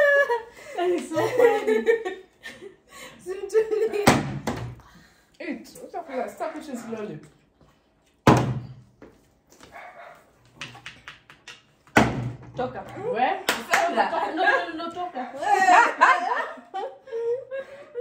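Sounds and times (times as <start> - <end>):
people talking: 0.0 - 2.0, 3.2 - 4.2, 5.4 - 7.3, 12.6 - 16.5
plastic bottle landing on hard surface: 8.2 - 8.8.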